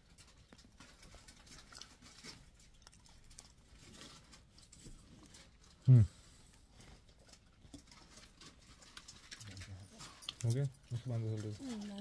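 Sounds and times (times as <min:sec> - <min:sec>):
clicks and rustles of handling: 0:00.0 - 0:12.0.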